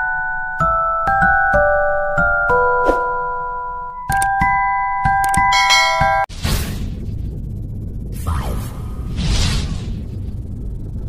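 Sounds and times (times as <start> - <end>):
bell-like chime notes: 4.5 - 6.3
bright ringing bell: 5.4 - 6.3.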